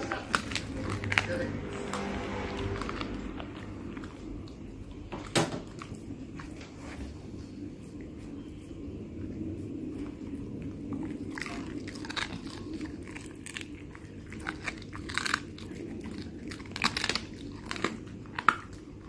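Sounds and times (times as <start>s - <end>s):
dog chewing crunching cartilage: 0.0s - 6.6s, 9.9s - 19.0s.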